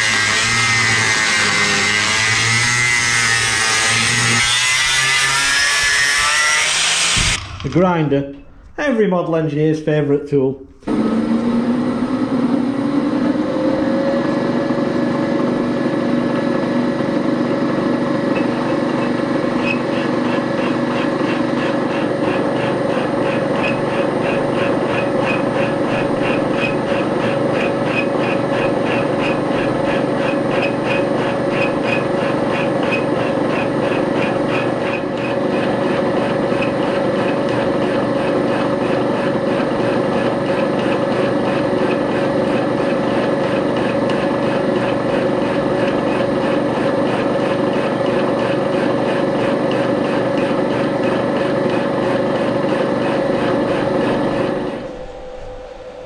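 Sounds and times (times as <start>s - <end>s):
milling machine cutting metal: 0.0s - 7.8s, 10.9s - 55.8s.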